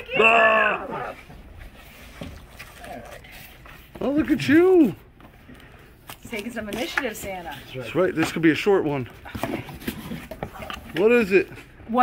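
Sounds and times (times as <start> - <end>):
cardboard boxes handled: 6.1 - 11.7.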